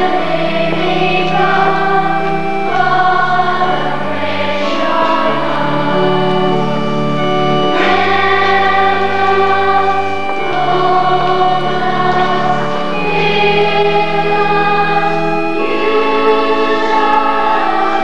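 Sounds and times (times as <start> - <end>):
choir singing a slow hymn: 0.0 - 18.0.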